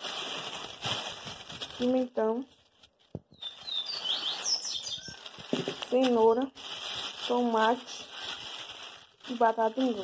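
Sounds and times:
plastic bags crinkling: 0.0s - 10.0s
small bird chirping: 3.3s - 7.2s.

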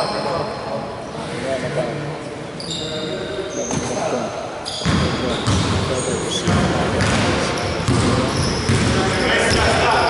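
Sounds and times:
voices in echoing hall: 0.0s - 10.0s.

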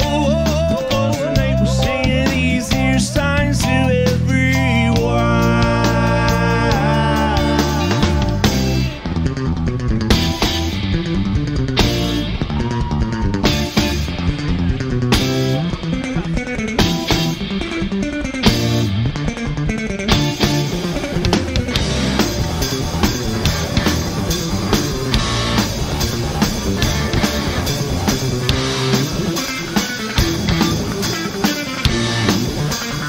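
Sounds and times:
bass guitar: 0.0s - 33.0s
drum kit: 0.0s - 33.0s
electric guitar: 0.0s - 33.0s.

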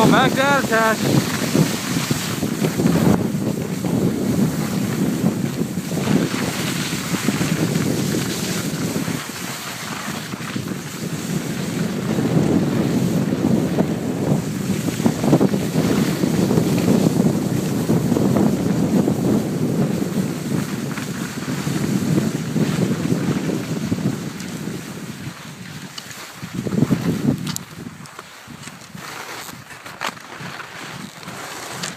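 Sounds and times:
wind buffeting phone microphone: 0.0s - 31.9s.

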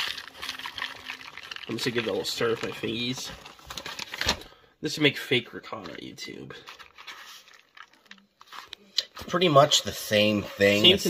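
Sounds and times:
fingers squishing sticky cheese: 6.7s - 8.8s.

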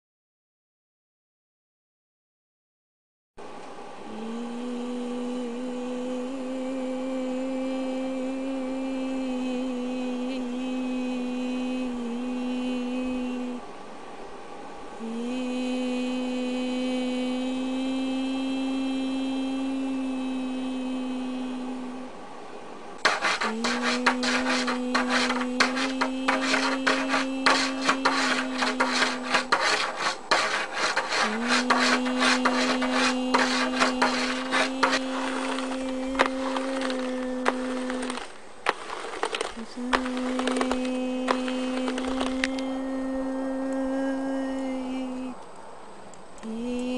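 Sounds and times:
person humming low note: 4.1s - 13.6s, 39.6s - 45.4s
hand scratching over objects: 23.0s - 42.5s.

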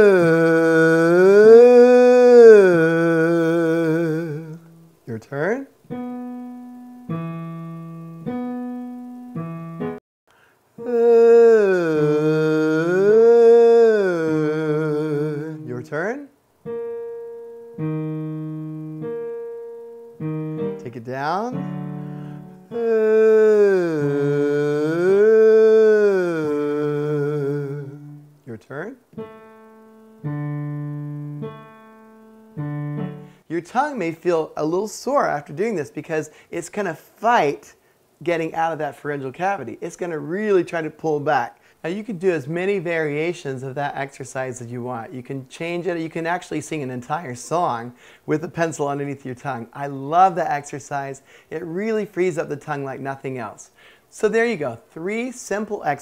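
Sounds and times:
man singing vocal exercise: 0.0s - 5.3s, 10.8s - 16.4s, 22.7s - 28.7s
piano single notes: 5.9s - 10.0s, 16.6s - 22.9s, 29.1s - 33.4s.

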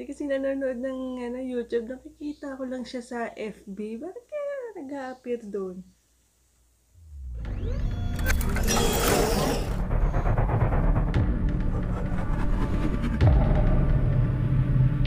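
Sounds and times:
intro music with bass rumble: 7.0s - 15.0s
heavy low hit: 8.6s - 15.0s.

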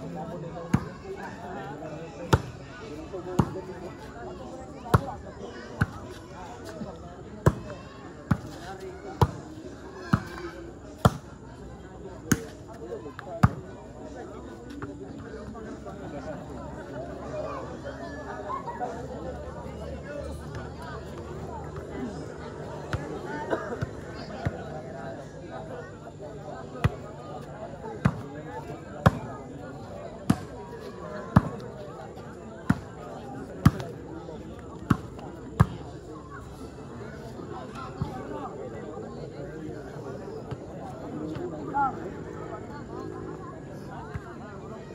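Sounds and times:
crowd voices: 0.0s - 44.9s.

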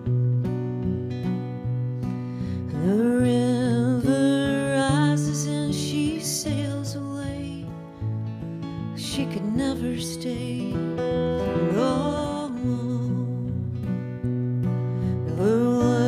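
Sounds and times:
acoustic guitars picking notes: 0.0s - 16.0s
woman singing: 2.5s - 8.0s, 8.7s - 14.2s, 15.0s - 16.0s.

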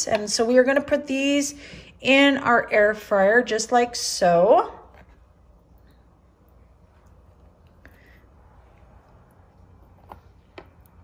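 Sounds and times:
low kitchen hum: 0.0s - 11.0s.

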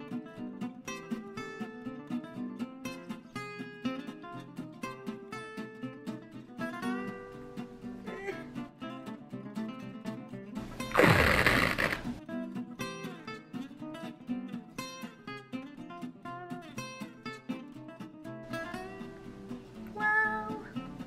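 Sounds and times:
acoustic guitar music: 0.0s - 21.0s
bandage wrap ripping: 10.8s - 12.2s.

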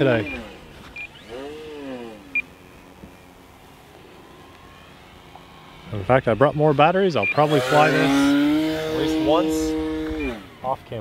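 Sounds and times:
faint steady hum: 0.0s - 11.0s
model plane motor whine: 0.0s - 11.0s.

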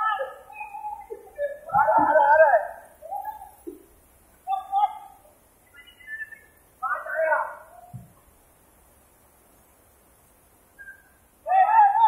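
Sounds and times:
young men hooting and yelling: 0.0s - 3.8s, 4.4s - 7.9s, 11.4s - 12.0s.

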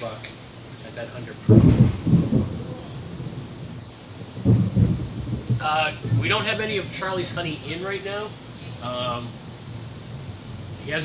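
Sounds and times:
faint low rumble: 0.8s - 11.0s
low muffled rumbling thumps: 0.9s - 11.0s.

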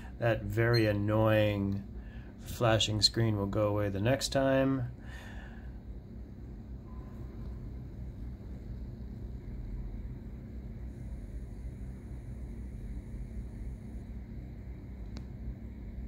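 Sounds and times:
thin high whine: 0.0s - 15.1s
machinery rumble and hum: 0.0s - 16.0s.

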